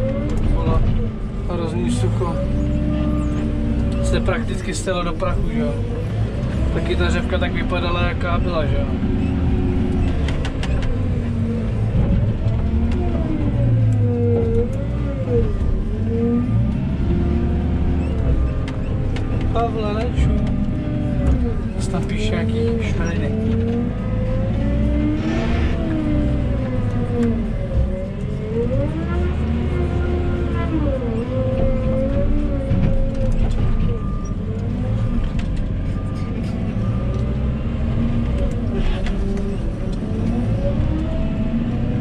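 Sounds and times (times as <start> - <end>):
diesel engine revving: 0.0 - 42.0.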